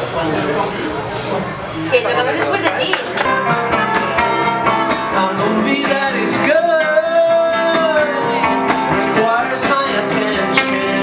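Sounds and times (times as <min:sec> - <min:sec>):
acoustic guitars strumming: 0:00.0 - 0:11.0
person singing: 0:03.2 - 0:11.0.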